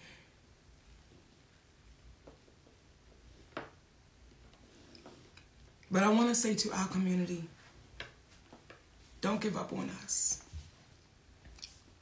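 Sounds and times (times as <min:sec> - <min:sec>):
woman speaking: 0:05.9 - 0:07.6, 0:09.2 - 0:10.5.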